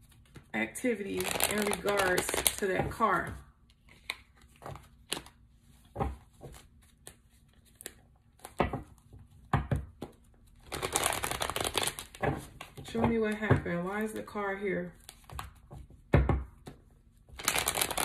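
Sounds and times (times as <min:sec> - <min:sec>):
cards shuffling: 0:01.1 - 0:02.7, 0:03.6 - 0:08.6, 0:10.0 - 0:12.8, 0:17.4 - 0:18.0.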